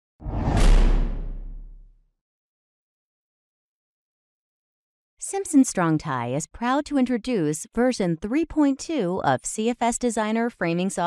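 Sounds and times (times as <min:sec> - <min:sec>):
deep low boom: 0:00.2 - 0:01.9
whoosh: 0:00.2 - 0:01.9.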